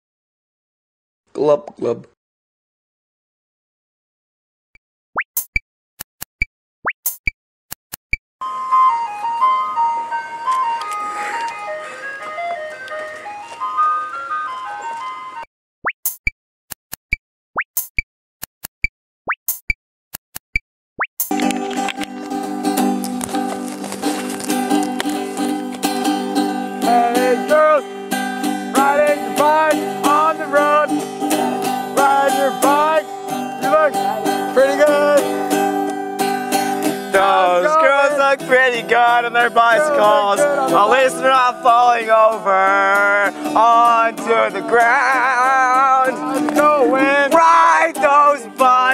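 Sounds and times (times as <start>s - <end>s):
tinkling chime-like melody: 10.9s - 15.4s
music with held chords: 21.4s - 48.9s
sliding voice-like notes: 28.7s - 35.4s.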